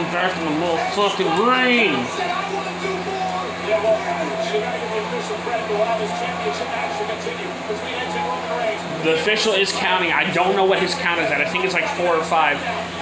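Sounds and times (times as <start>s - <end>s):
indistinct commentary voices: 0.0s - 13.0s
steady low hum: 0.0s - 13.0s.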